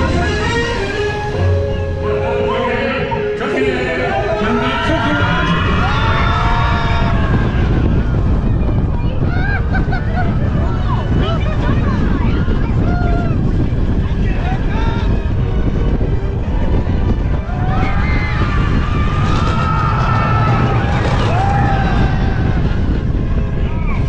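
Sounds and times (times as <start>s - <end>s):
music: 0.0s - 24.0s
roller coaster rumbling on track: 0.0s - 24.0s
wind buffeting microphone: 0.0s - 24.0s
riders shouting and screaming: 4.0s - 15.2s.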